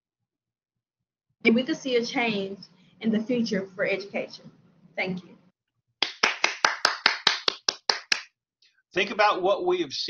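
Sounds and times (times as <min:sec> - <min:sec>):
person clapping: 0:06.0 - 0:08.3.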